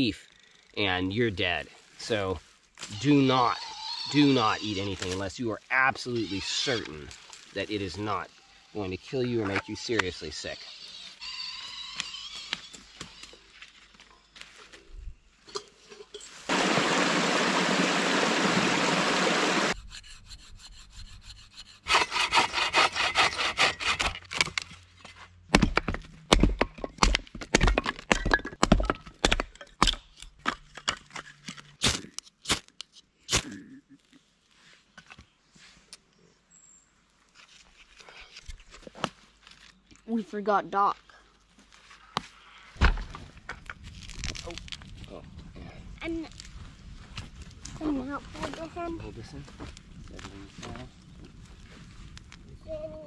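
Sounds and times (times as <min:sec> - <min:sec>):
hatchet chopping wood: 0:25.5 - 0:31.2.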